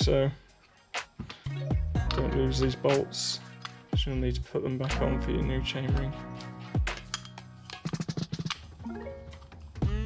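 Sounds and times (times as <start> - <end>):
music with held tones: 0.0 - 10.0.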